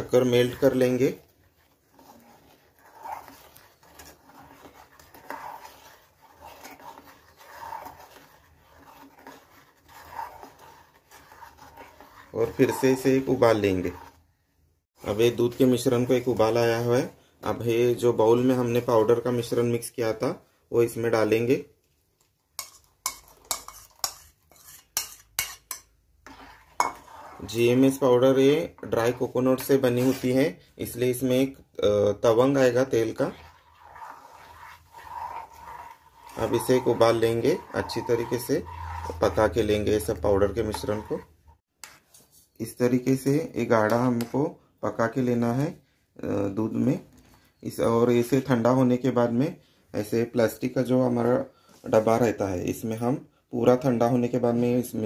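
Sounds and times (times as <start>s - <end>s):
metal spoon scraping a pot: 0.0s - 14.2s, 22.5s - 42.2s.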